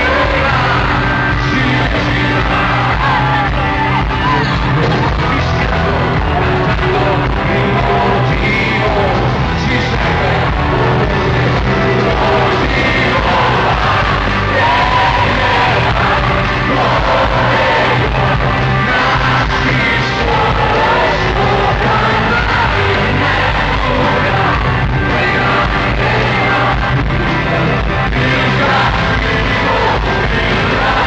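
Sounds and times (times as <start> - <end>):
crowd yelling and singing along: 0.0 - 31.0
live rock band with vocals: 0.0 - 31.0.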